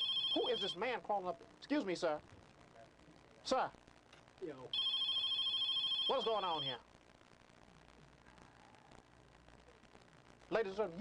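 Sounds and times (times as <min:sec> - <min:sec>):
warbling telephone ringing: 0:00.0 - 0:00.8, 0:04.7 - 0:06.8.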